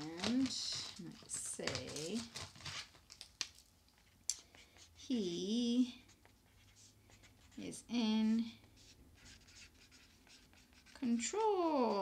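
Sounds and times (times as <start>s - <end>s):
marker scratching on paper plate: 4.5s - 7.9s, 8.6s - 12.0s.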